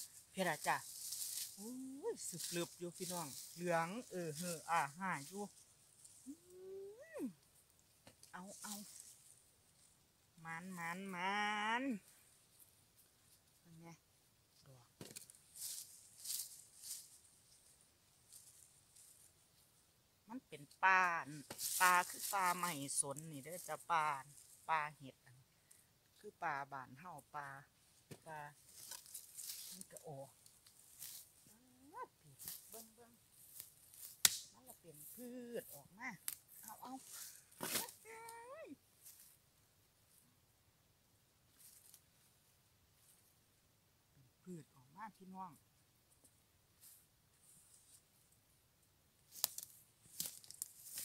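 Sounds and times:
gloved hands rustling grass: 0.0 - 10.0, 15.1 - 19.6, 21.1 - 24.7, 27.9 - 31.6, 32.2 - 39.5, 49.2 - 51.0.

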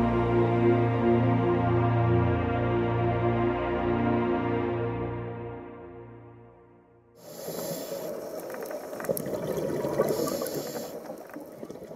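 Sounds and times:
hiss: 7.2 - 8.6, 10.0 - 11.4
water bubbling and gurgling: 7.2 - 11.9
dense crackle of small clicks: 7.5 - 11.9.

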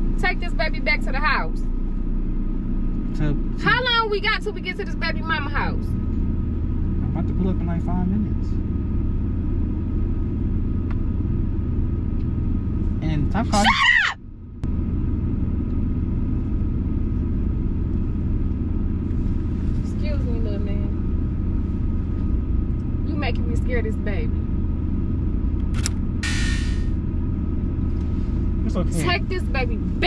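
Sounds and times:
car cabin road noise: 0.0 - 30.0
short hiss: 26.2 - 26.9.

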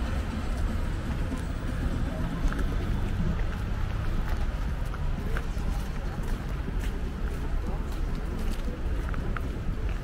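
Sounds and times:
footsteps on stone paving: 0.0 - 10.0
low city rumble: 0.0 - 10.0.

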